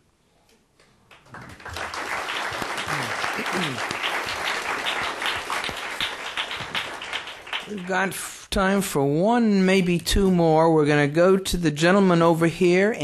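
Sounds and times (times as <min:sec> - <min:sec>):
audience applauding: 0:01.1 - 0:08.2.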